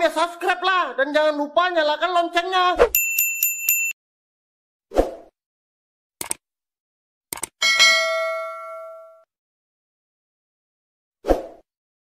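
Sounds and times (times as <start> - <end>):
bell ding: 3.0 - 4.0, 7.6 - 9.3.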